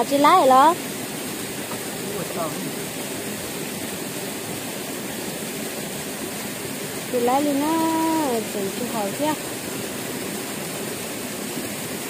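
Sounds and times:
flowing water rushing: 0:00.0 - 0:12.0.

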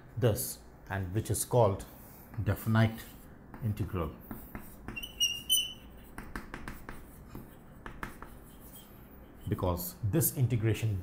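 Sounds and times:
chalk scratching on blackboard: 0:04.2 - 0:09.8.

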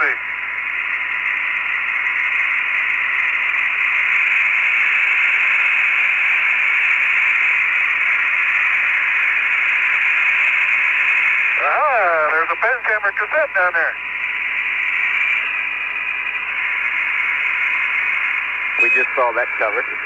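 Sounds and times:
radio static hiss: 0:00.0 - 0:20.0
faint steady tone: 0:07.7 - 0:20.0.

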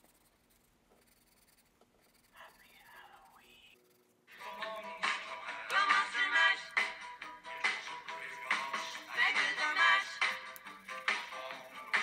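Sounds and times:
faint whisper-like voice: 0:02.2 - 0:03.8.

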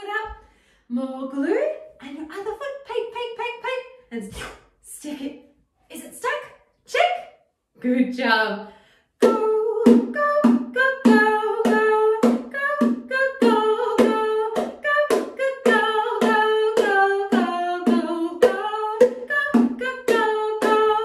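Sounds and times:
steady tapped beat: 0:09.2 - 0:21.0
woman singing: 0:09.2 - 0:21.0.

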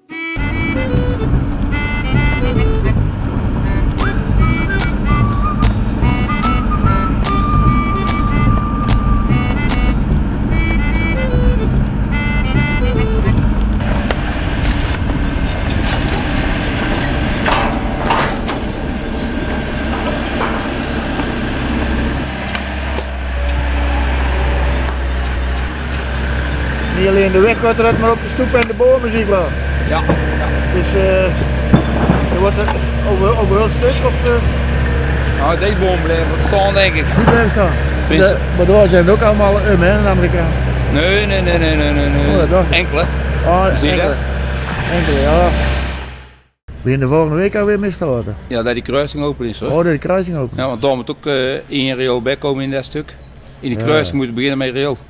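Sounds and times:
intro music melody: 0:00.0 - 0:13.8
excavator diesel engine running: 0:00.1 - 0:46.5.

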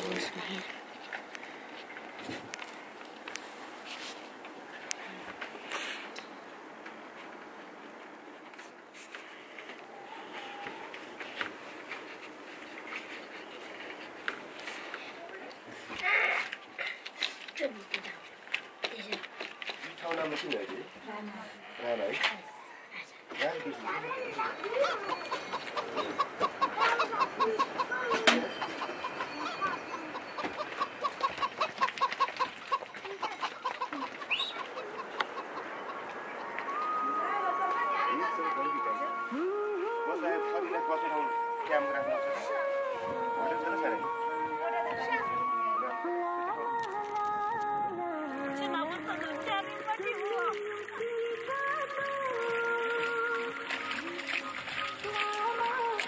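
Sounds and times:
background hiss: 0:00.0 - 0:17.4
chickens clucking: 0:23.5 - 0:39.1.

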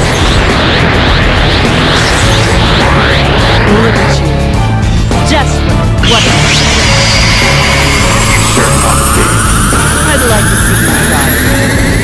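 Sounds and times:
energy blast roar: 0:00.0 - 0:04.9, 0:06.0 - 0:12.0
high whine rising in pitch: 0:00.0 - 0:04.9, 0:06.0 - 0:12.0.

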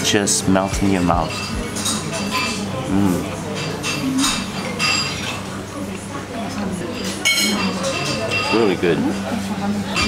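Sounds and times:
cutlery clinking on plates and glasses: 0:00.8 - 0:10.0.

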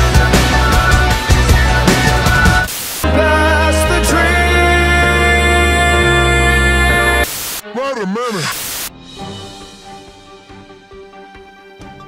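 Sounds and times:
music: 0:00.0 - 0:08.1, 0:08.9 - 0:12.0
loud static hiss: 0:02.5 - 0:03.1, 0:07.2 - 0:08.9
warbling voice: 0:07.7 - 0:08.6.

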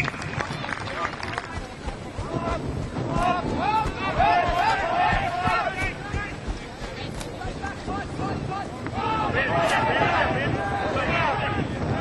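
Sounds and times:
crowd murmur: 0:00.0 - 0:12.0
spectators shouting: 0:00.0 - 0:12.0.

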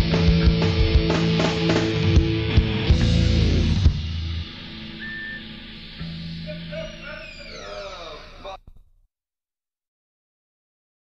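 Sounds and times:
alternative rock music: 0:00.0 - 0:08.6
tones sliding downward in pitch: 0:04.4 - 0:08.5.

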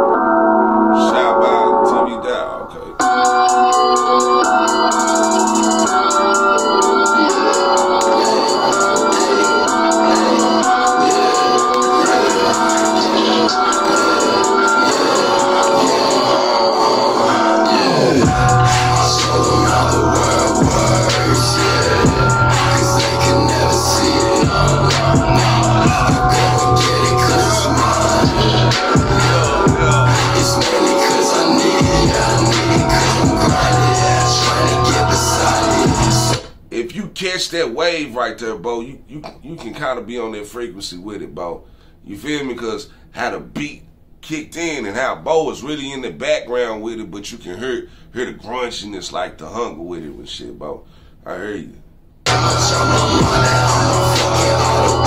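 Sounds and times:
hip-hop beat with heavy bass: 0:00.0 - 0:36.6, 0:52.3 - 0:55.0.

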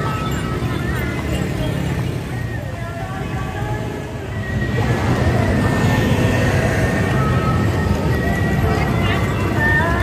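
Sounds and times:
indistinct voices: 0:00.0 - 0:10.0
motorbike and car engines passing: 0:00.0 - 0:10.0.

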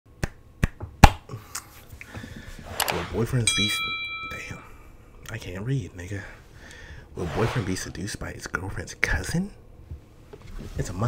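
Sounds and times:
hands snapping: 0:00.2 - 0:01.7.

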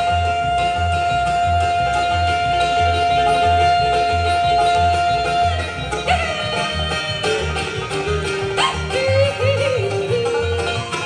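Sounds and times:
bluegrass band playing: 0:00.0 - 0:11.0.

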